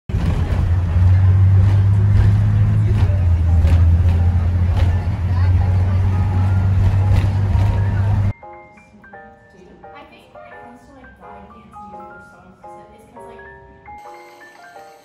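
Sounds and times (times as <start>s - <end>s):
vehicle engine and road drone: 0.1s - 8.3s.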